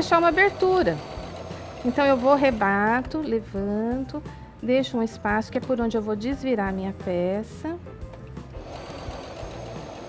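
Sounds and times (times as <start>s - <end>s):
sewing machine stitching: 8.6s - 10.0s.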